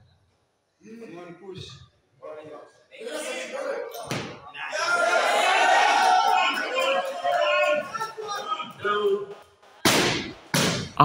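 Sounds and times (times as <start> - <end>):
voices: 1.0 - 9.6.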